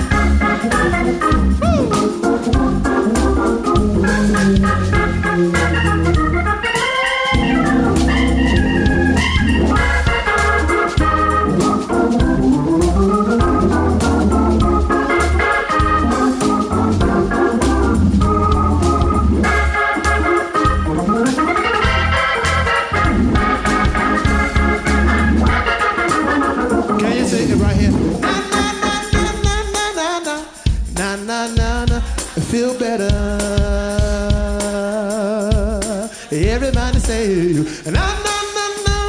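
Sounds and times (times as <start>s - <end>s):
deep steady bass: 0.0s - 6.6s, 7.4s - 26.0s, 26.6s - 29.6s
organ playing: 0.0s - 39.0s.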